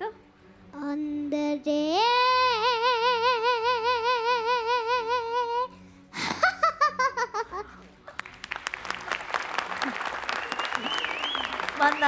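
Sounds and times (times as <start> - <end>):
child laughing: 6.2 - 7.8
audience clapping and cheering: 8.1 - 12.0.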